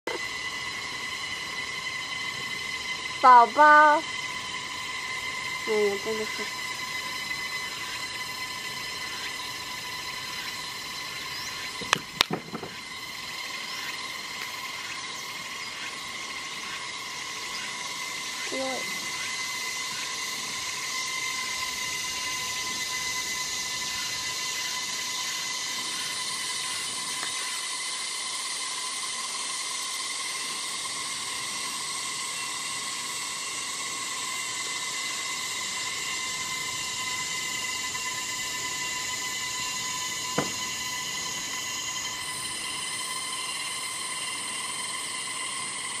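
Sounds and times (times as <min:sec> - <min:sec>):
constant whining tones: 0:00.0 - 0:46.0
high-pitched droning hiss: 0:00.0 - 0:46.0.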